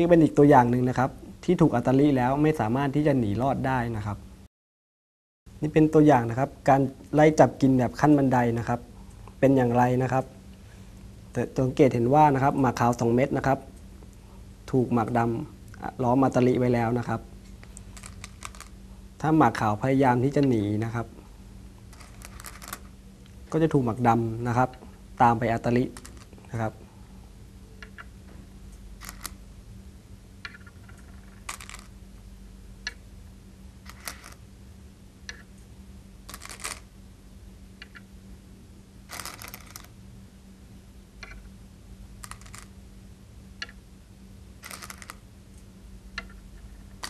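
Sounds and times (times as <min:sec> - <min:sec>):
man speaking: 0:00.0 - 0:04.2, 0:09.4 - 0:10.3, 0:14.7 - 0:17.3, 0:19.2 - 0:21.2, 0:23.5 - 0:26.8
stones clicking on wooden board: 0:17.7 - 0:18.7, 0:21.9 - 0:22.9, 0:26.0 - 0:26.3, 0:29.0 - 0:29.4, 0:30.4 - 0:31.9, 0:33.9 - 0:34.4, 0:36.3 - 0:36.8, 0:39.1 - 0:39.9, 0:42.2 - 0:42.7, 0:44.6 - 0:45.2.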